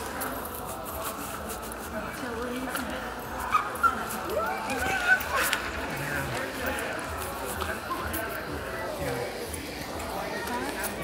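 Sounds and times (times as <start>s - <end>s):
shoppers' background voices: 0.0s - 11.0s.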